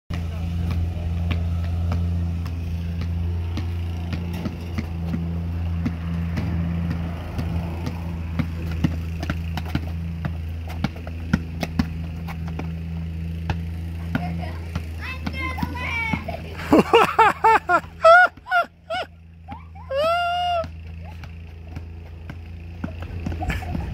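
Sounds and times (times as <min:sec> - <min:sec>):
basketball bouncing on asphalt: 0:00.1 - 0:23.9
steady low hum: 0:00.1 - 0:23.9
child's high-pitched voice: 0:14.2 - 0:16.6.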